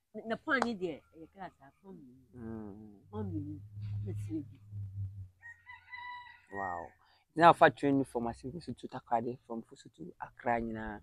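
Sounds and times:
distant rooster crowing: 5.4 - 7.2.

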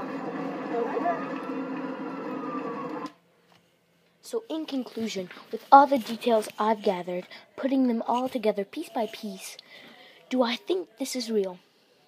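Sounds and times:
ambulance siren wailing: 0.0 - 3.2.

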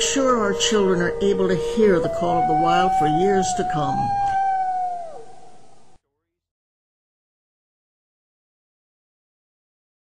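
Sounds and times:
wolf howling: 0.0 - 5.8.

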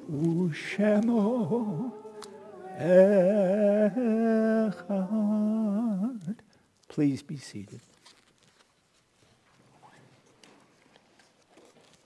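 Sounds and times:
man humming: 0.0 - 6.4.

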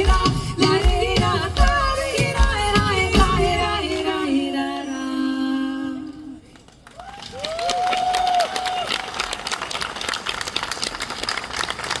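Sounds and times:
audience applause: 6.8 - 12.0
whooping cheers: 6.9 - 9.5.

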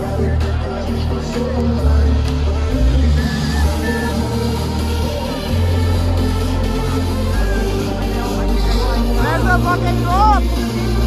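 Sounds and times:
loud electronic dance music: 0.0 - 11.0.

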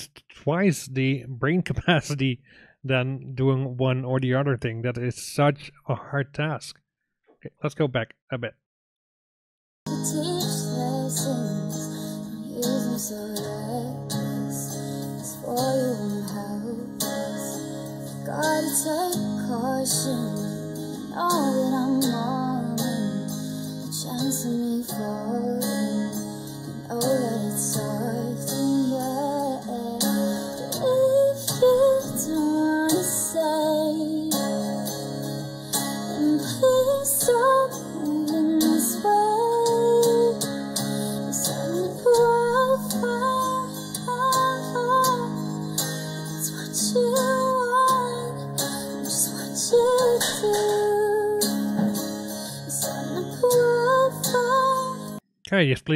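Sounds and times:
woman singing: 9.9 - 55.2
guitar: 9.9 - 55.9.

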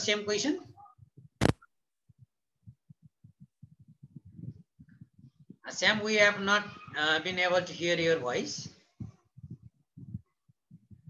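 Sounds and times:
faint low thumps: 0.7 - 7.8, 8.6 - 11.0.

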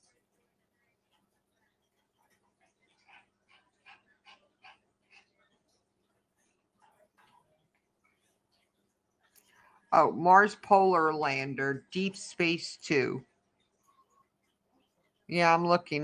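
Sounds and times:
woman's voice: 9.9 - 13.3, 15.3 - 16.0.

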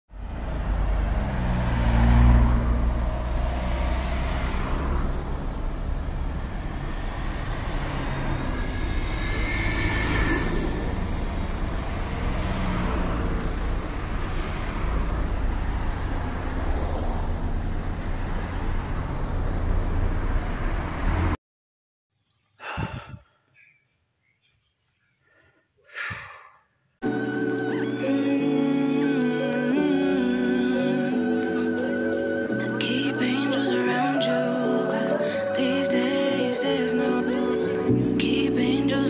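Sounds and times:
vehicle rumble: 0.1 - 21.4.

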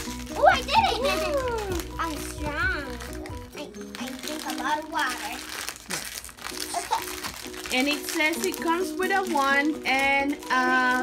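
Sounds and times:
background music with held notes: 0.0 - 11.0
packaging crinkling as torn open: 0.0 - 11.0.

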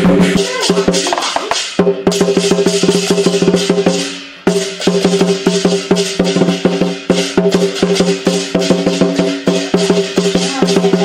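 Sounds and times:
fast drum strokes: 0.0 - 11.0.

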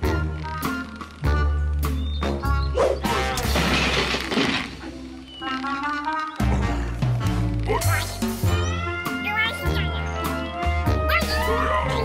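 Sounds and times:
bouncy cartoon music: 0.0 - 12.0.

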